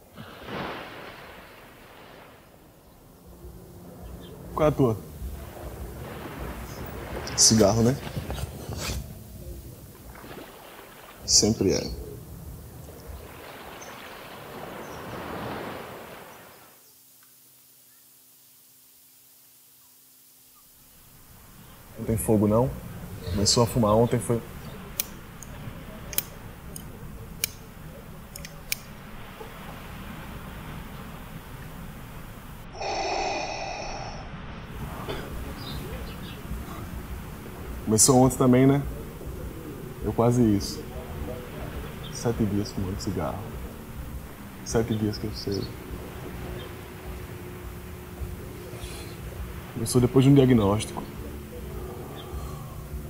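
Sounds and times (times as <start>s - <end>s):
low background rumble: 2.6s - 10.1s, 11.2s - 13.9s, 29.9s - 53.0s
drag on a cigarette: 8.3s - 9.2s.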